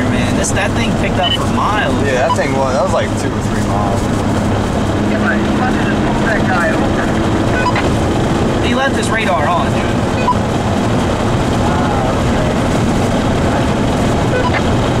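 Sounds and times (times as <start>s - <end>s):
car engine drone: 0.0s - 15.0s
tyre and road noise: 0.0s - 15.0s.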